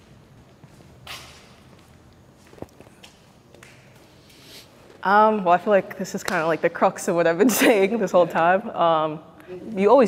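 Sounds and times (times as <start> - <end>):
soft footsteps on stage floor: 0.0 - 4.1.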